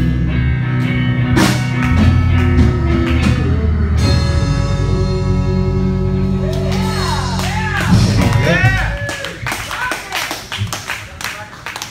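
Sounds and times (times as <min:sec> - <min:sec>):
live band music: 0:00.0 - 0:09.6
audience clapping: 0:06.5 - 0:11.9.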